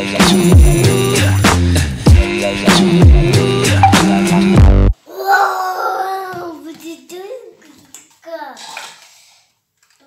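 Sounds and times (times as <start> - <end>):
young child babbling: 5.1 - 6.6.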